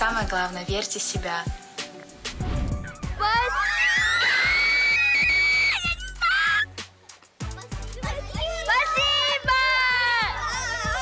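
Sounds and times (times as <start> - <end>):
background music with steady beat: 0.0 - 11.0
children squealing: 3.3 - 6.8.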